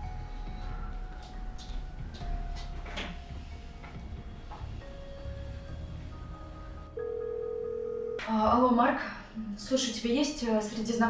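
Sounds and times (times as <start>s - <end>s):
soft background music: 0.0s - 11.0s
telephone ringback tone: 6.9s - 8.2s.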